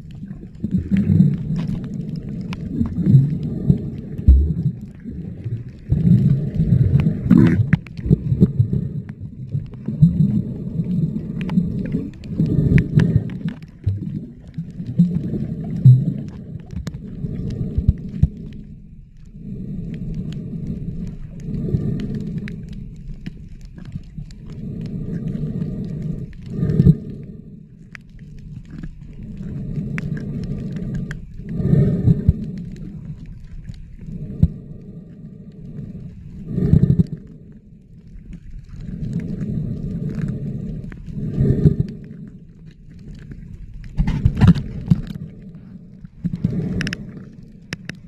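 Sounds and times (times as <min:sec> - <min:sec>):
small clicks underwater: 0:00.0 - 0:48.0
underwater rumbling surges: 0:00.0 - 0:48.0.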